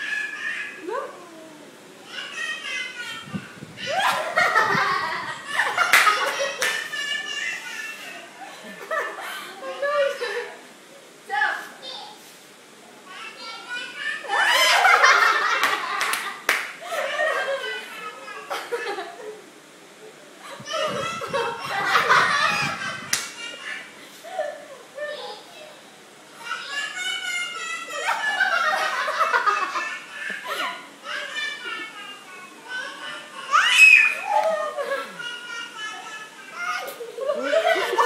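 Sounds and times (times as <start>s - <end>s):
hand claps: 5.9s - 6.9s, 15.6s - 16.8s, 23.1s - 23.4s.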